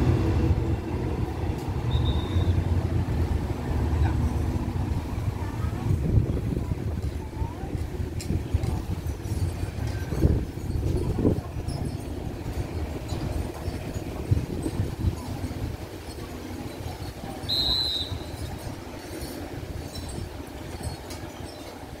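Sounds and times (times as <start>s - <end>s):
train rumbling low: 0.0s - 22.0s.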